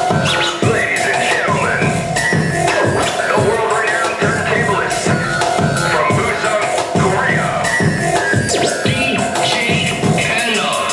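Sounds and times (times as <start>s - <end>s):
hip-hop beat: 0.0s - 10.9s
record scratching: 0.0s - 10.9s.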